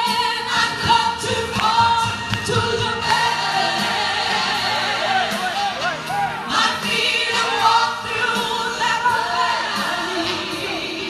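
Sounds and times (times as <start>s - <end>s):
woman singing gospel: 0.0s - 5.4s, 6.5s - 11.0s
choir-like voices: 0.0s - 11.0s
musical accompaniment: 0.0s - 11.0s.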